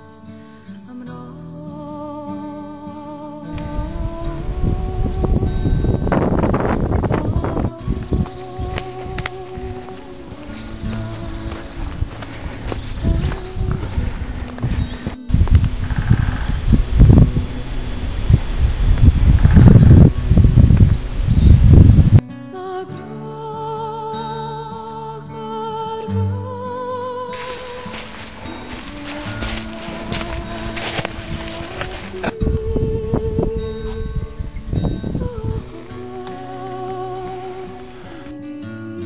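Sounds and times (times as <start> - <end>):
background music: 0.0 - 39.0
wind gusts on microphone: 3.5 - 22.2, 27.4 - 35.8
woodpecker drumming: 8.1 - 21.8.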